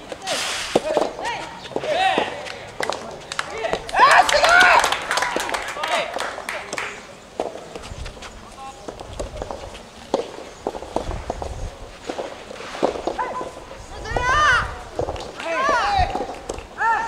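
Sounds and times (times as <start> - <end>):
footsteps on tennis court: 0.0 - 4.5, 6.6 - 16.8.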